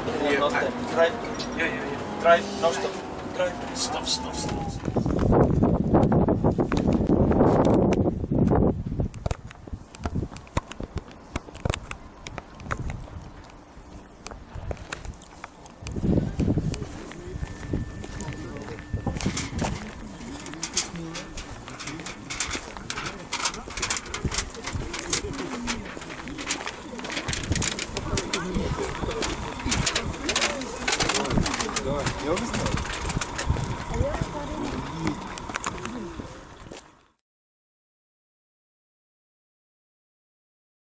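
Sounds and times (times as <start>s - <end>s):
people talking: 0.0s - 5.1s, 16.0s - 36.4s
wind rumble on microphone: 4.2s - 36.8s.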